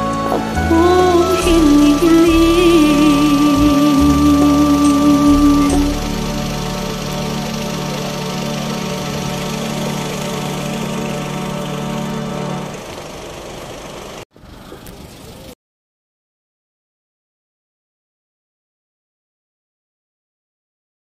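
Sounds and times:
slow song: 0:00.0 - 0:13.0
held chord: 0:00.0 - 0:13.1.

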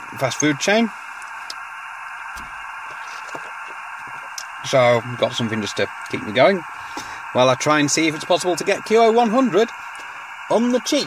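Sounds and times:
radio receiver hiss: 0:00.0 - 0:11.0.

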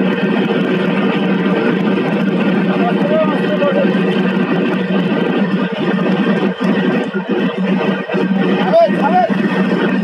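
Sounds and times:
engine and winch droning: 0:00.0 - 0:10.0.

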